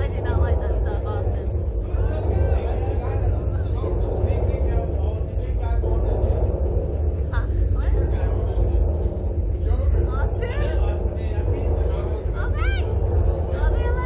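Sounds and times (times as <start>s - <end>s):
faint voices talking: 0.0s - 14.0s
steady low rumble: 0.0s - 14.0s.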